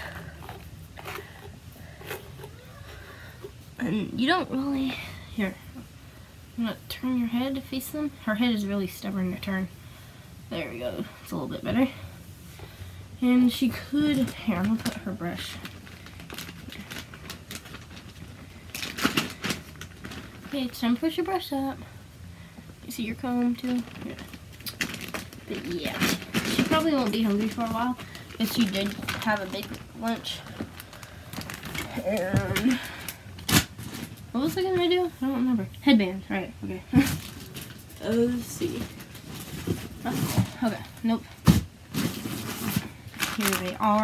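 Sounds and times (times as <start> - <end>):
steady low hum: 0.0 - 44.0
plastic bag crinkling: 14.0 - 21.6, 22.8 - 34.6, 37.0 - 44.0.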